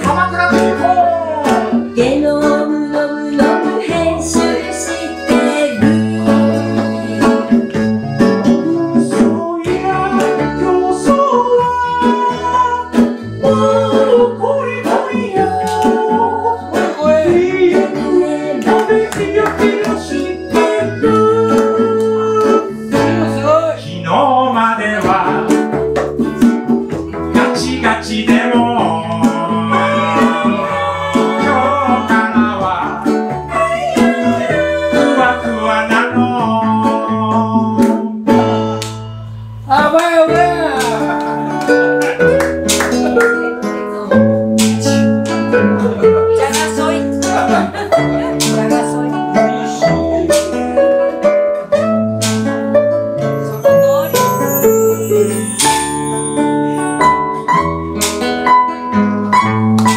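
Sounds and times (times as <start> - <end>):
accordion: 0.0 - 24.1, 37.8 - 59.9
man singing: 0.0 - 25.8, 27.2 - 38.2, 39.7 - 41.4, 44.8 - 52.0
acoustic bass guitar: 0.0 - 59.9
strummed acoustic guitars: 0.0 - 59.9.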